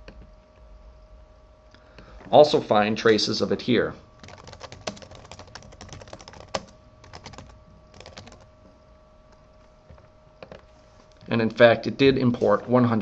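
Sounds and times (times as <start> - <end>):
computer keyboard typing: 4.2 - 8.5.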